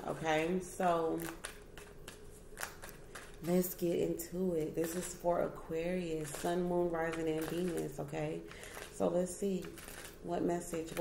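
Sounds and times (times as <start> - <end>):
cards shuffling: 1.1 - 3.5, 6.1 - 9.0.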